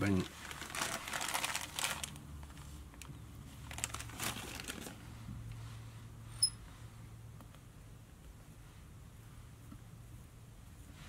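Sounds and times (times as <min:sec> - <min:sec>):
fur rustling and crinkling: 0:00.1 - 0:02.7, 0:03.6 - 0:05.1.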